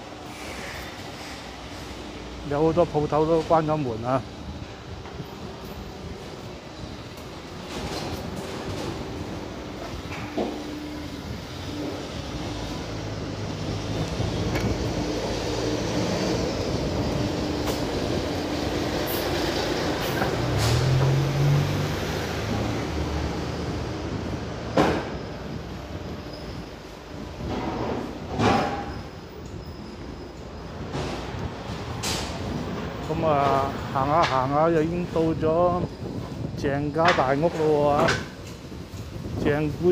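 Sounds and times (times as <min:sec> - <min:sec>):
bus engine driving past: 0:08.3 - 0:28.2.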